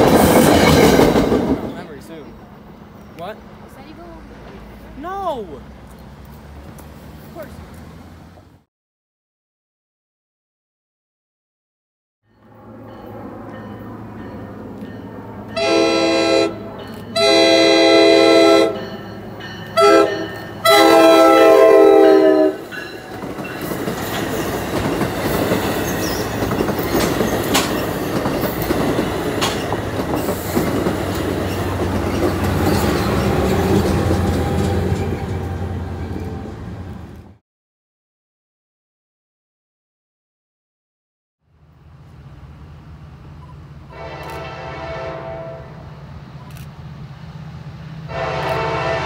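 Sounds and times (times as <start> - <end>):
train wheels clattering on rails: 0.0 - 2.3, 22.6 - 36.4
train horn blasts: 15.5 - 18.8, 19.7 - 22.7, 43.9 - 45.8, 48.1 - 49.0.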